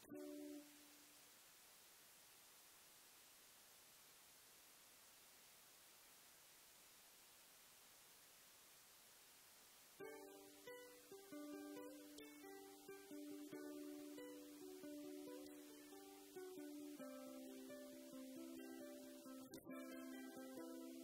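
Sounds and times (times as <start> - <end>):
ukulele melody: 0.0 - 1.2, 10.0 - 21.0
faint hiss: 0.0 - 21.0.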